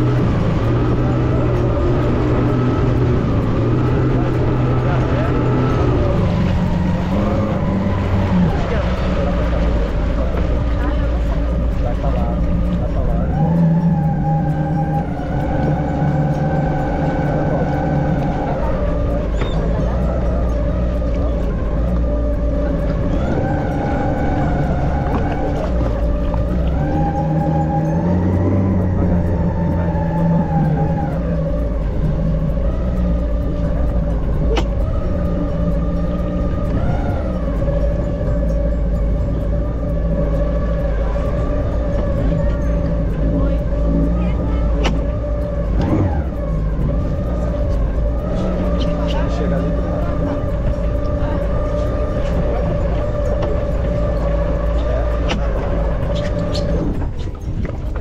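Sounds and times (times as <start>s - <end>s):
jet ski engine running: 0.0s - 58.0s.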